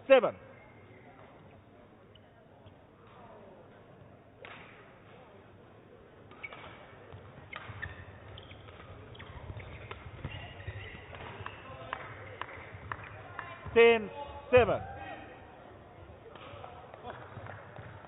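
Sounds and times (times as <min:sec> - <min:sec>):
racket hitting shuttlecock: 0:04.4 - 0:05.2, 0:06.3 - 0:13.6
shoes squeaking on court: 0:06.2 - 0:11.7.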